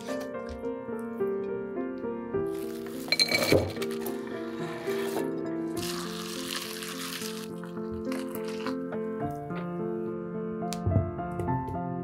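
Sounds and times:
background music: 0.0s - 12.0s
glass clink: 3.1s - 3.7s.

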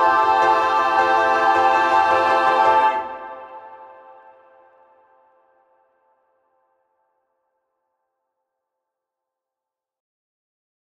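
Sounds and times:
choir and piano chord: 0.0s - 5.2s.

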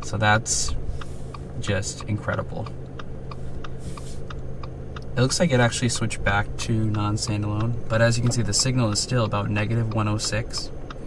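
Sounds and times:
low hum inside car: 0.0s - 11.0s
steady ticking: 0.0s - 11.0s.

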